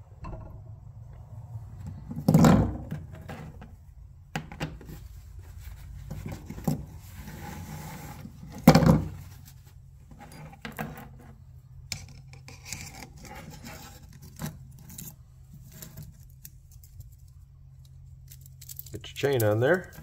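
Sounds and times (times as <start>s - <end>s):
small clicks and scrapes: 10.1s - 20.0s.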